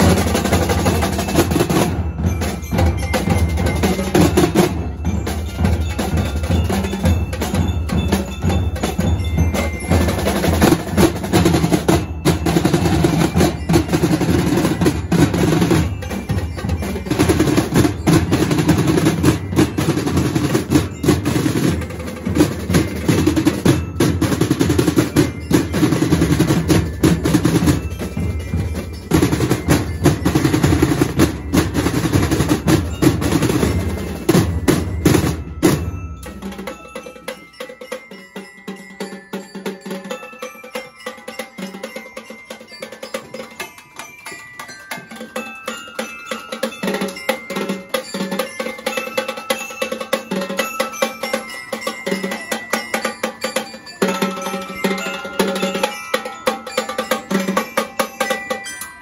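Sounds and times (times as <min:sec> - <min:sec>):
marching drumline playing: 0:00.0 - 0:58.7.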